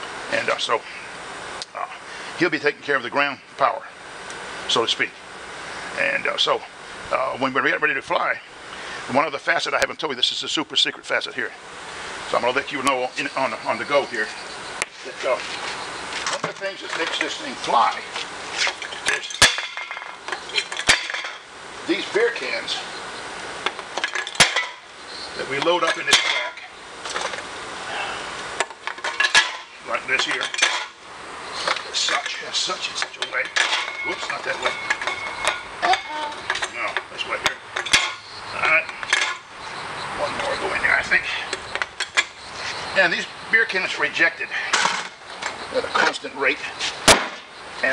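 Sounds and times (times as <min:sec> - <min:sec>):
aluminium cans clinking: 0:18.6 - 0:21.5, 0:23.6 - 0:24.9, 0:28.6 - 0:31.0, 0:33.0 - 0:39.5.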